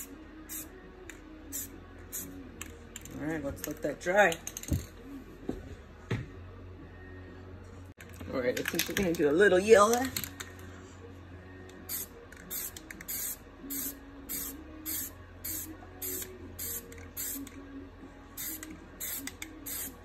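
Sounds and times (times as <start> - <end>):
spray paint can hissing: 0.0 - 0.7, 11.9 - 17.5, 18.4 - 20.0.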